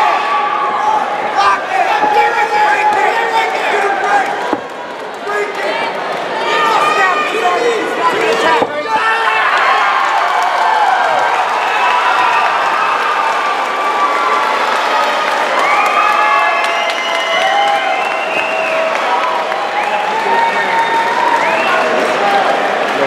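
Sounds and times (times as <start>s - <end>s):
crowd shouting and whooping: 0.0s - 23.0s
crowd clapping: 2.1s - 8.6s, 9.5s - 23.0s.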